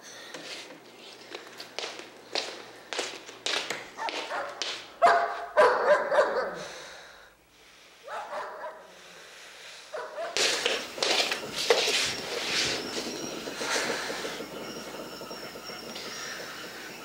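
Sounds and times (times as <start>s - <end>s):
dogs barking and whining: 4.0s - 6.7s, 8.0s - 9.0s, 9.9s - 11.0s.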